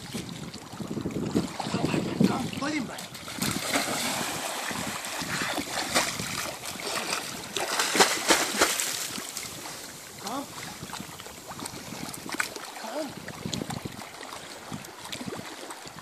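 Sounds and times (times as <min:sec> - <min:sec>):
dog splashing through water: 0:03.0 - 0:09.5.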